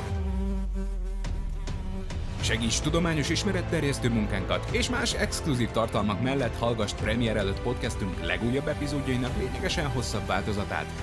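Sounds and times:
housefly buzzing: 0.0 - 2.4.

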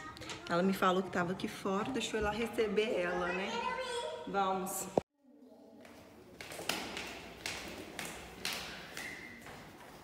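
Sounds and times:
footsteps on tiled stairs: 5.8 - 10.0.

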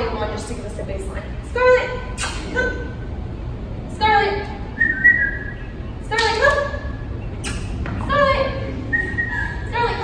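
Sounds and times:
high rising whistle: 8.8 - 9.6.

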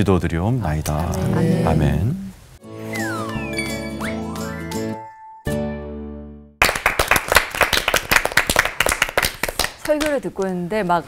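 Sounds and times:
group applause: 6.6 - 10.2.

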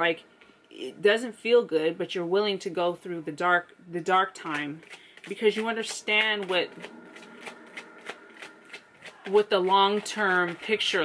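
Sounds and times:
cards being shuffled: 4.3 - 11.0.

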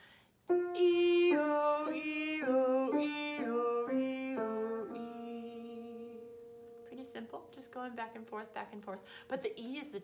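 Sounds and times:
woman singing vocal warm-up: 0.5 - 9.8.

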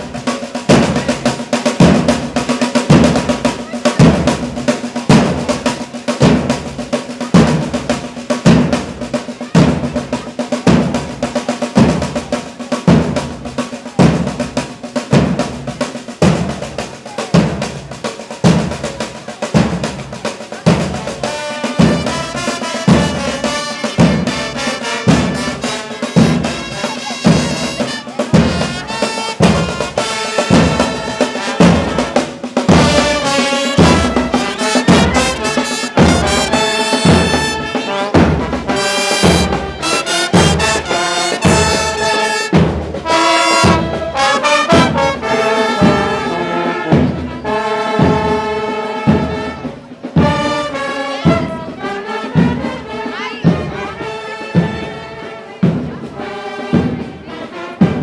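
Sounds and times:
snare drums rolling: 0.0 - 58.0
brass melody: 21.0 - 55.5.

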